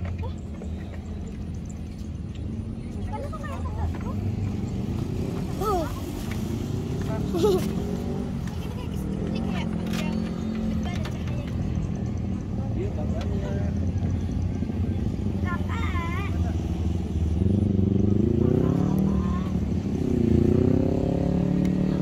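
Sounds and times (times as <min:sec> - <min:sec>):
low rumble of traffic: 0:00.0 - 0:22.0.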